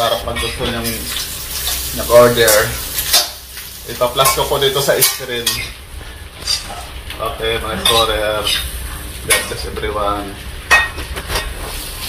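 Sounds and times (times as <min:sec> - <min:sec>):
pork skin frying in oil: 0:00.0 - 0:12.0.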